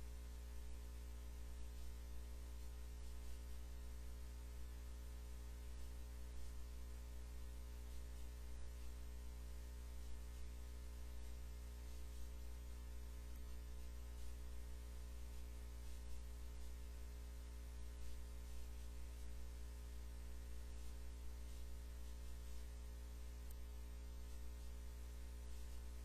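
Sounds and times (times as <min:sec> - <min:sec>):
electrical mains hum: 0:00.0 - 0:26.0
faint hiss: 0:00.0 - 0:26.0.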